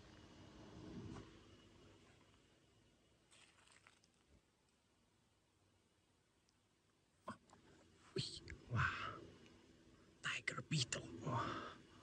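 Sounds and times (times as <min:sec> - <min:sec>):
person whispering: 0:07.3 - 0:09.2, 0:10.2 - 0:11.8.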